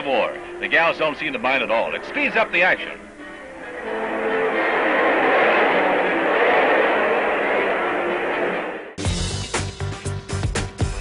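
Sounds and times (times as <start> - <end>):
dense noisy music: 0.0 - 11.0.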